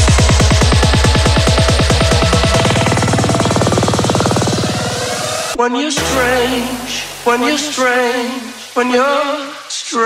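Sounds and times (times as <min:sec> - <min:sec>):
buzzing roll of synth and drum hits: 0:00.0 - 0:09.4.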